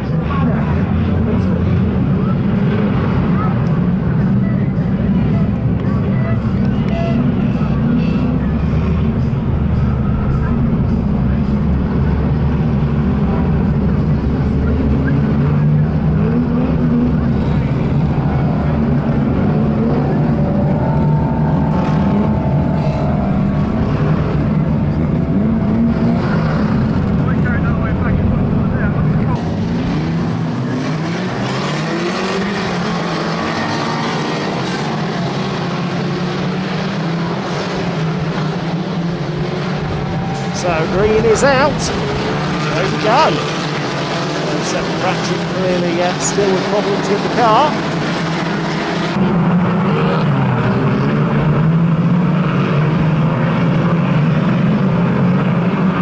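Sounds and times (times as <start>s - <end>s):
deep engine rumble: 0.0s - 56.0s
racing car engines revving: 0.0s - 56.0s.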